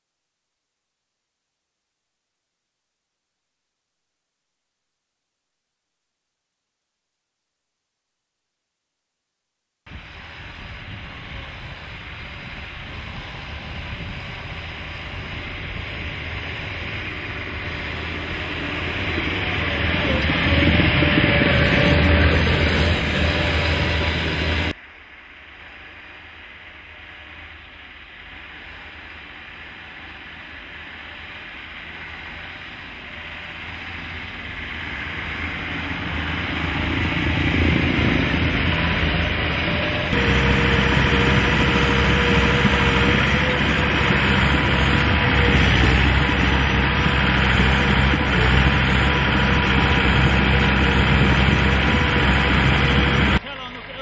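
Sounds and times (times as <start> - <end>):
tracked vehicle engine: 10.0 - 24.8, 25.5 - 54.0.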